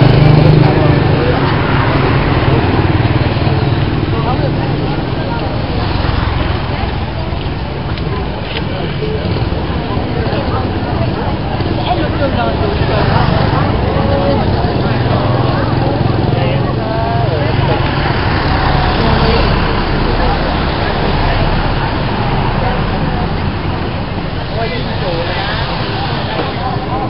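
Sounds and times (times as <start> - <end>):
people talking: 0.0 - 27.0
road traffic rumble: 0.0 - 27.0.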